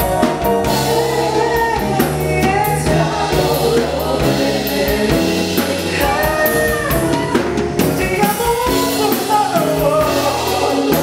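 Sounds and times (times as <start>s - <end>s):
backing singers: 0.0s - 11.0s
bass guitar: 0.0s - 11.0s
drum kit: 0.0s - 11.0s
electric keyboard: 0.0s - 11.0s
man singing lead: 0.0s - 11.0s.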